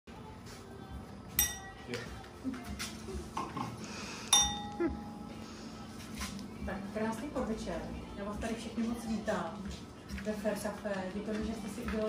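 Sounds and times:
glass clinking: 1.4s - 1.8s, 4.3s - 5.3s.

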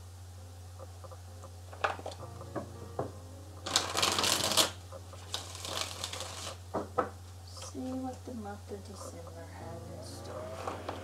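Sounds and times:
cards being shuffled: 3.6s - 6.6s.

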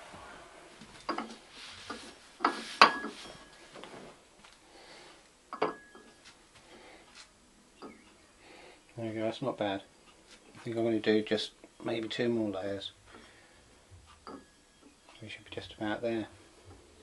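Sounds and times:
hard objects knocking and clinking: 5.5s - 6.2s.

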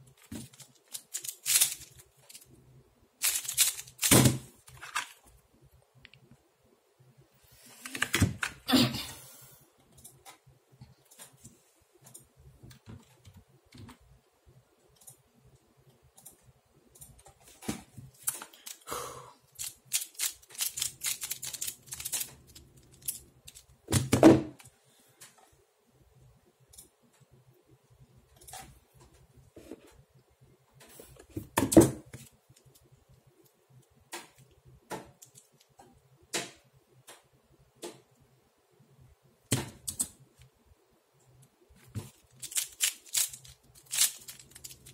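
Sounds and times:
plastic puzzles clicking and clattering: 0.0s - 2.6s, 3.2s - 5.4s, 17.0s - 24.8s, 34.1s - 36.5s, 41.3s - 44.9s.

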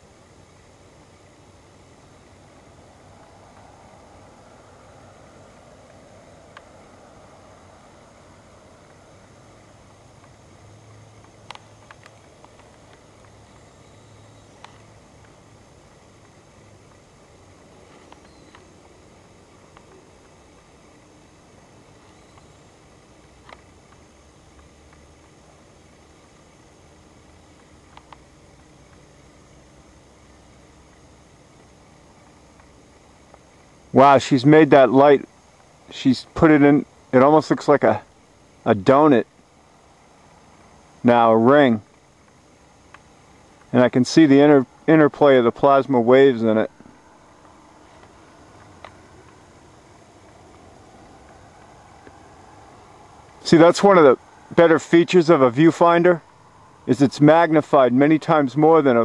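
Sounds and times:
steady hiss: 0.0s - 59.0s
distant noise: 1.0s - 23.6s, 34.0s - 59.0s
sharp clicks: 9.8s - 13.7s, 27.2s - 29.0s.

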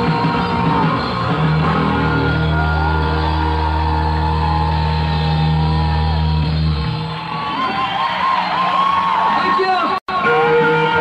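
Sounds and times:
crowd shouts and whoops: 0.0s - 11.0s.

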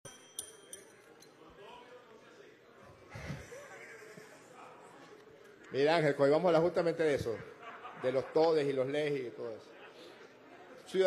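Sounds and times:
desk bell ringing: 0.0s - 1.1s.

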